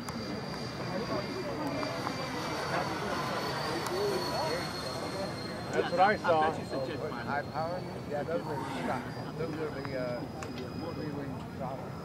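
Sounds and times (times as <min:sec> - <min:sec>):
electric fans whining: 0:00.0 - 0:12.0
faint spectator chatter: 0:00.2 - 0:12.0.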